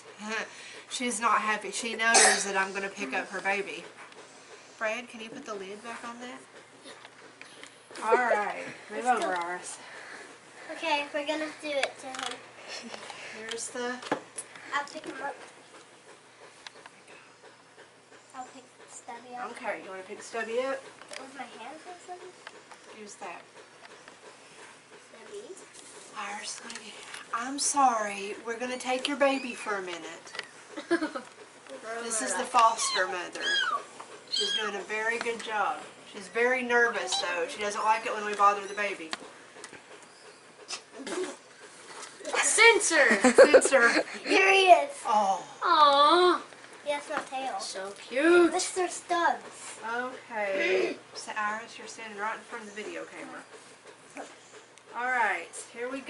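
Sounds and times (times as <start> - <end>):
cat crying: 32.7 - 34.7.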